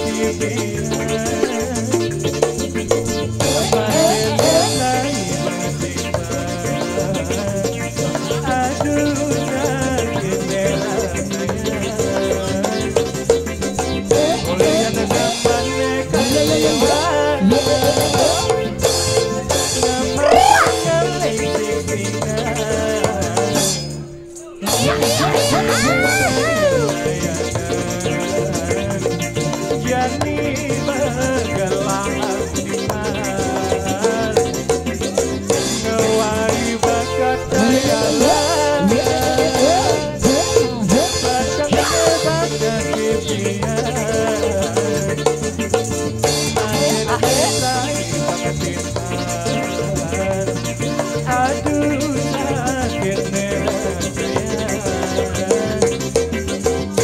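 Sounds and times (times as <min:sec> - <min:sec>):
drumming and percussion: 0:00.0 - 0:57.0
bamboo xylophones playing: 0:23.4 - 0:28.0.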